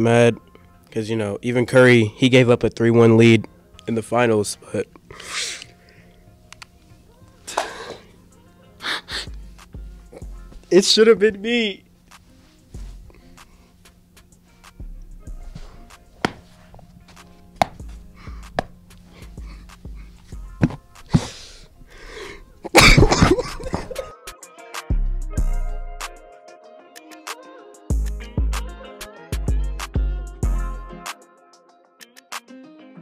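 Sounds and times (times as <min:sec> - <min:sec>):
man's sharp breath: 0:05.1 - 0:06.1, 0:08.8 - 0:09.4, 0:21.1 - 0:22.5
man coughing hard: 0:22.7 - 0:24.1.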